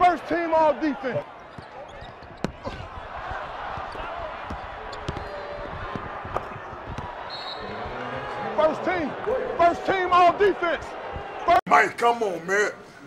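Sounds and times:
arena crowd noise: 0:00.0 - 0:13.0
basketball bouncing on hardwood: 0:04.4 - 0:07.1.

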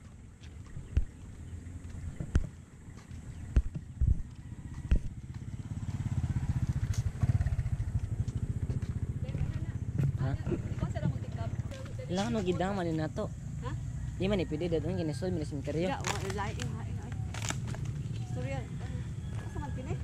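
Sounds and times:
vehicle engine running: 0:00.0 - 0:20.0.

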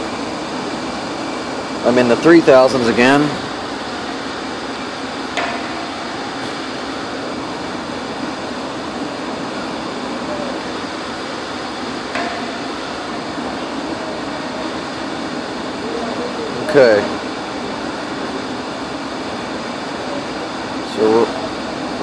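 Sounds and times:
fan-like room noise: 0:00.0 - 0:22.0.

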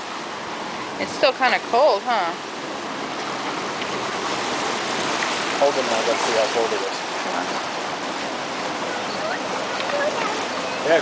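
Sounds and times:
sea water rushing around rocks: 0:00.0 - 0:11.0.

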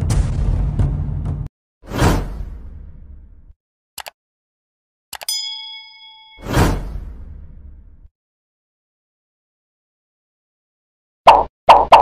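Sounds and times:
bright bell ding: 0:05.3 - 0:06.8.

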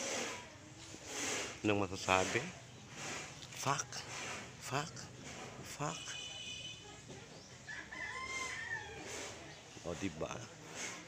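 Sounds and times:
rooster crowing: 0:07.7 - 0:09.2.

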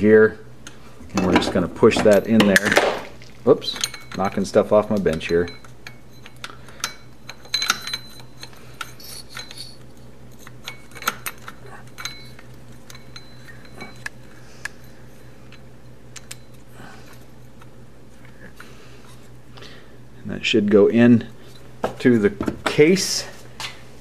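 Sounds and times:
light metal clicks and clinks: 0:01.2 - 0:02.8, 0:03.6 - 0:17.7.

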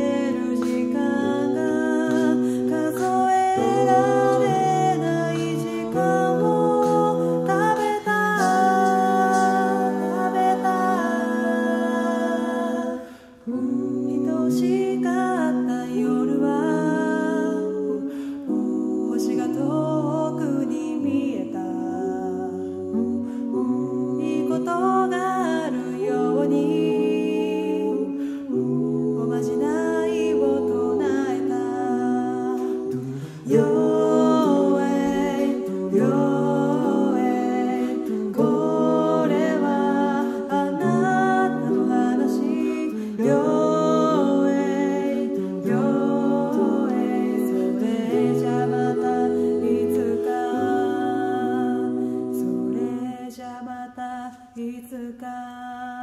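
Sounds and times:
a cappella group singing chords: 0:00.0 - 0:56.0.

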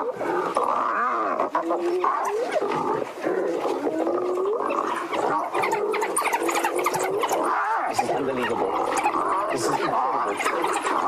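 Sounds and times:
growls: 0:00.0 - 0:11.0
wild dogs high chirps: 0:00.0 - 0:11.0.

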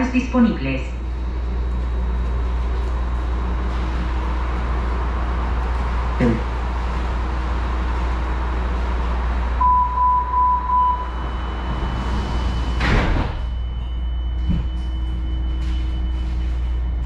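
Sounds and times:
subway car low hum: 0:00.0 - 0:17.0
door chime beeps: 0:09.6 - 0:16.6
sliding doors closing: 0:10.3 - 0:16.6.

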